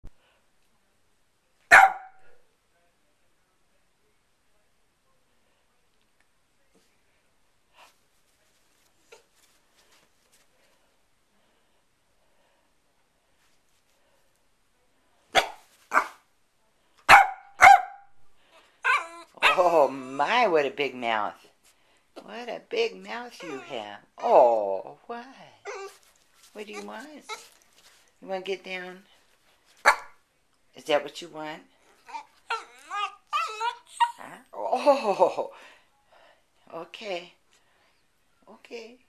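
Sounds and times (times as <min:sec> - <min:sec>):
puppy barking: 0:01.7 - 0:02.4, 0:15.3 - 0:16.2, 0:17.1 - 0:18.1, 0:18.8 - 0:19.7, 0:29.8 - 0:30.2.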